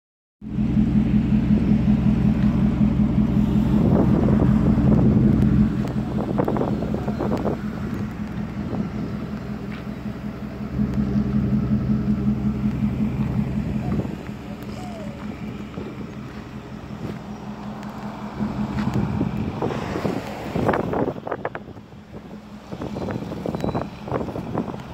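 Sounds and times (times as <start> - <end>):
diesel truck engine idling: 0.4 - 24.9.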